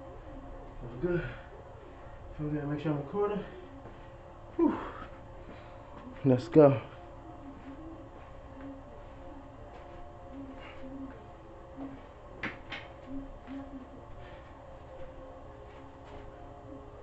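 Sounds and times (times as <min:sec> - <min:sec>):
room hum: 0:00.0 - 0:17.0
soft footsteps: 0:03.0 - 0:16.7.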